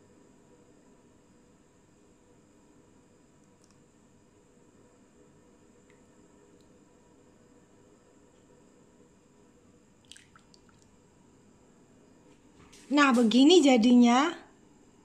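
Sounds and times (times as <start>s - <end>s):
faint room hum: 0.0s - 15.0s.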